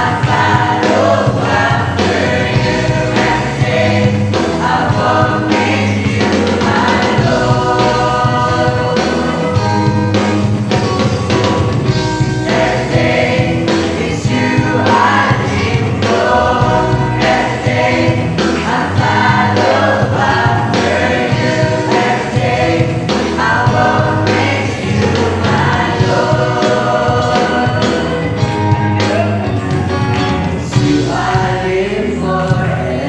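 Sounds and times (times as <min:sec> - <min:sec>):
amplified instrumental accompaniment: 0:00.0 - 0:33.0
choir singing gospel song: 0:00.0 - 0:33.0.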